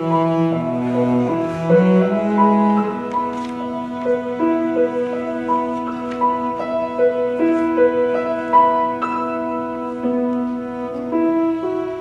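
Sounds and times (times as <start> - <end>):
cello bowed notes: 0.0 - 12.0
piano playing: 0.0 - 12.0.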